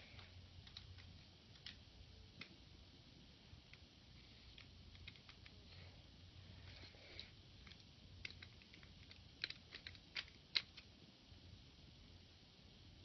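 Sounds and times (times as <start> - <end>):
small clicks and taps: 0.1 - 1.8, 7.2 - 10.9.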